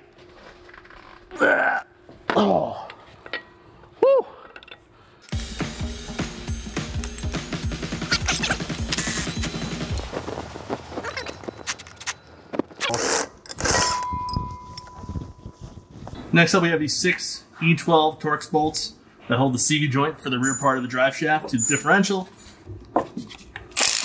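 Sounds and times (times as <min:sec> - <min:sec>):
tool and bolt clinking: 0:04.4 - 0:05.4, 0:08.1 - 0:09.1, 0:11.2 - 0:15.6.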